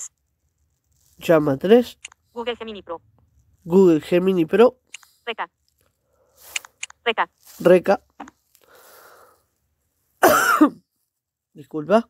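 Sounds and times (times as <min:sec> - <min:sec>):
person coughing: 0:10.2 - 0:10.8.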